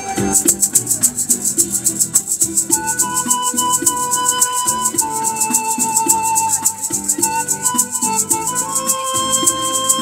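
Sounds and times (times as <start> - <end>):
maraca shaking: 0.0 - 10.0
pan flute melody: 0.0 - 10.0
plucked strings: 0.0 - 10.0.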